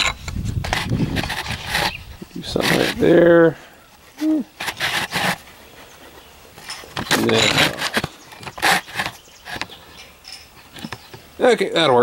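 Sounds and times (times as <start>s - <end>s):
camera handling scrapes and rustles: 0.0s - 3.2s, 3.9s - 11.2s.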